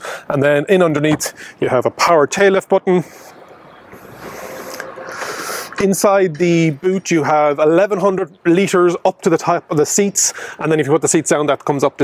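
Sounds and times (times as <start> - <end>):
tailgate motor whirring: 3.4 - 5.8.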